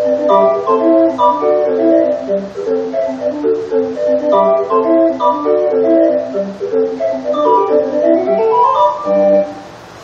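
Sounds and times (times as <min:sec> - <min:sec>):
street organ playing a tune: 0:00.0 - 0:09.8.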